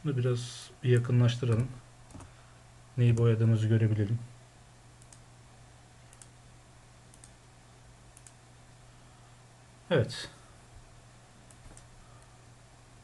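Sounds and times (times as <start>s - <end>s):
low steady hum: 0.0s - 13.0s
faint computer mouse clicks: 5.0s - 5.2s, 6.1s - 6.4s, 7.1s - 7.4s, 8.1s - 8.4s, 11.5s - 12.3s.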